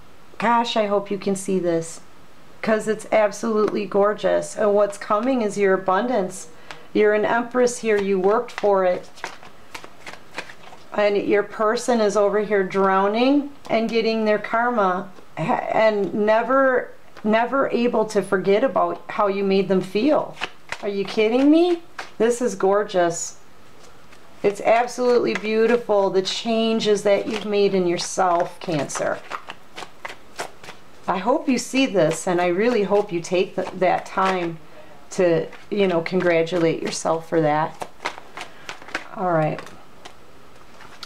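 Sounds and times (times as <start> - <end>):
cards being shuffled: 6.6 - 11.0, 20.0 - 22.5, 23.8 - 25.9, 26.6 - 34.6, 35.2 - 41.0.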